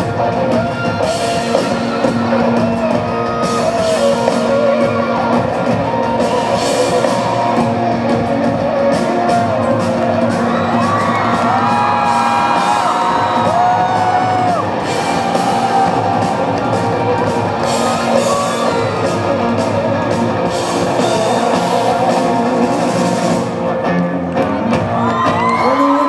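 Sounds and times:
electric guitar and drums: 0:00.0 - 0:26.0
audience whooping and cheering: 0:00.4 - 0:23.8, 0:24.4 - 0:26.0.

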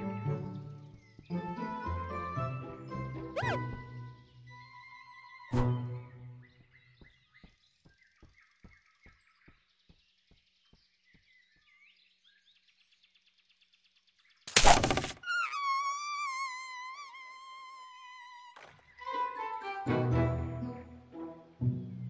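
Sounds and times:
faint birdsong: 0:00.0 - 0:19.4.

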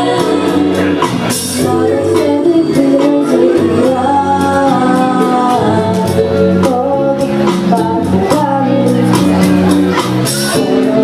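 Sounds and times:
girl singing through microphone: 0:00.0 - 0:09.7.

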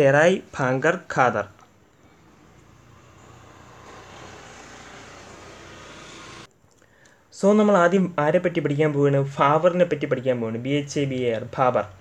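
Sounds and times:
steady rushing background noise: 0:01.8 - 0:06.5.

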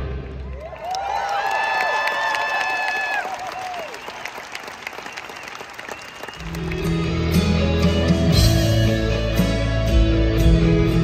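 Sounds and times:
audience applauding: 0:00.4 - 0:07.5
rock band playing: 0:06.4 - 0:11.0.

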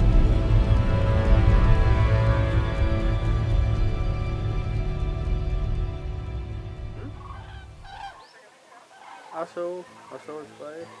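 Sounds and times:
background music: 0:00.0 - 0:08.3, 0:09.1 - 0:11.0
large birds calling: 0:06.8 - 0:11.0.

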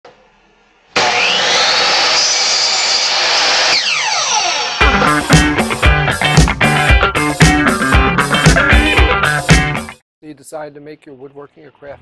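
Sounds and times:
electric blower rushing air: 0:01.0 - 0:09.8.

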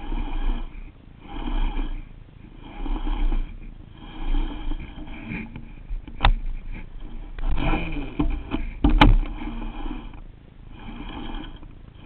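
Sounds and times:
fishing reel cranking: 0:00.0 - 0:05.5, 0:07.0 - 0:08.6, 0:09.3 - 0:12.0.

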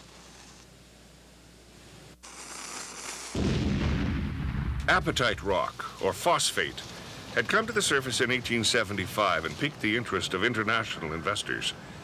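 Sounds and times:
match striking and hissing: 0:00.0 - 0:00.7, 0:02.2 - 0:03.4
deep rumbling boom: 0:03.4 - 0:05.6.

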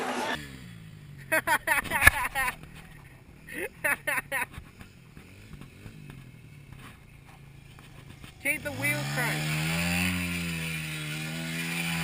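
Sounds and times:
low engine hum: 0:00.4 - 0:12.0.

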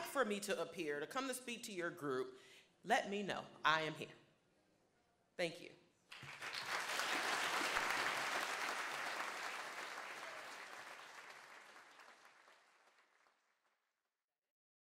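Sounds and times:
audience applauding: 0:06.1 - 0:13.6.

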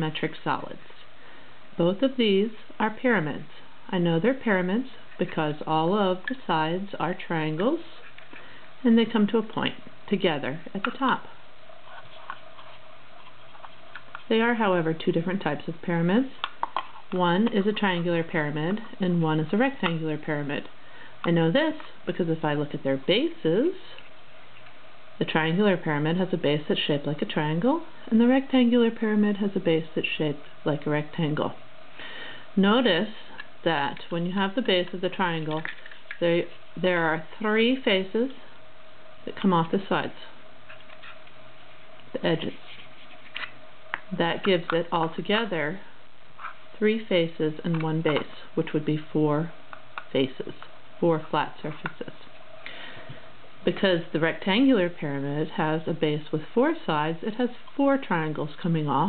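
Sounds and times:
room hum and hiss: 0:00.0 - 0:59.0.

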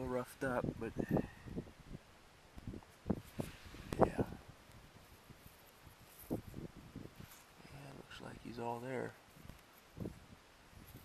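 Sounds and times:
soil and stone crackles and knocks: 0:02.6 - 0:11.0.

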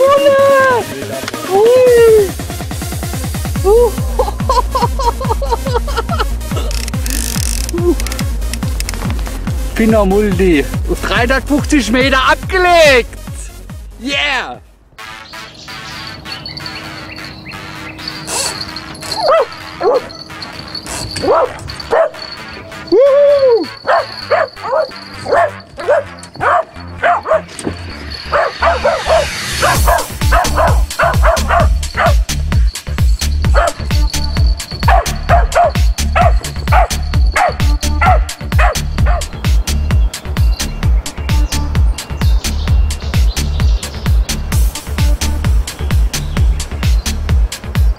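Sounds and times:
electronic music with heavy beat: 0:00.0 - 0:16.0, 0:24.9 - 0:47.9
dog yipping and barking: 0:15.9 - 0:39.4.

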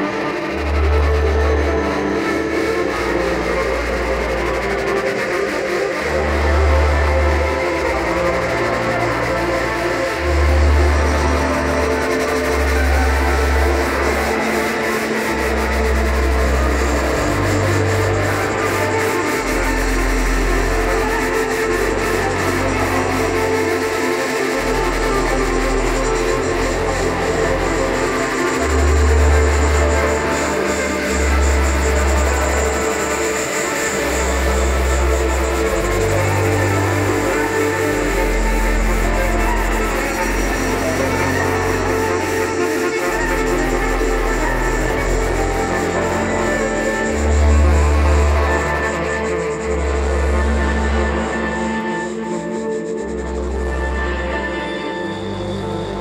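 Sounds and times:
deep bass notes: 0:00.0 - 0:56.0
keyboards: 0:00.0 - 0:56.0
saxophone: 0:00.0 - 0:56.0.

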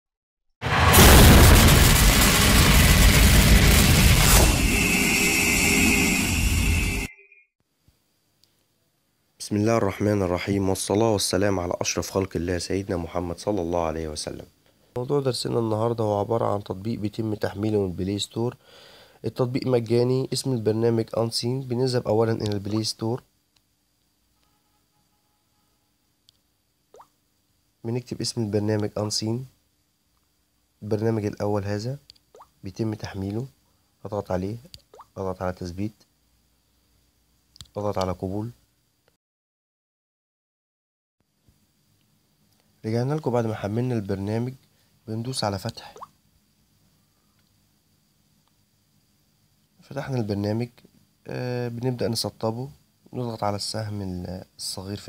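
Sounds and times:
boom with heavy rumble: 0:00.6 - 0:04.8
man speaking: 0:09.4 - 0:18.6, 0:19.2 - 0:23.2.

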